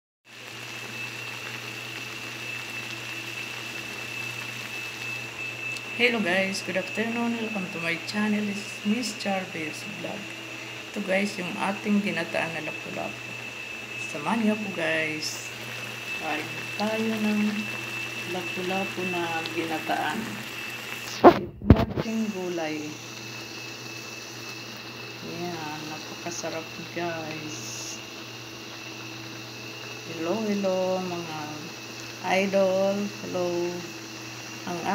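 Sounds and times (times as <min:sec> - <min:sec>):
pot boiling and bubbling: 0:00.2 - 0:34.9
high-pitched whine: 0:00.3 - 0:34.9
low hum: 0:00.5 - 0:34.9.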